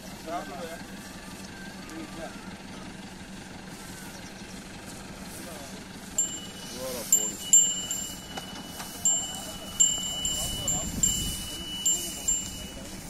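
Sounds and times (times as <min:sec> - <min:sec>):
small bells jingling: 0:06.0 - 0:13.0.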